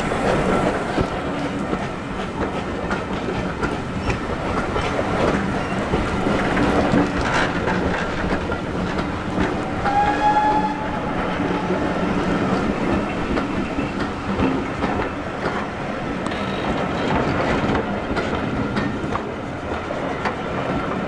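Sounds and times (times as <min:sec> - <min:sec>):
train wheels clicking over rail joints: 0:00.0 - 0:21.0.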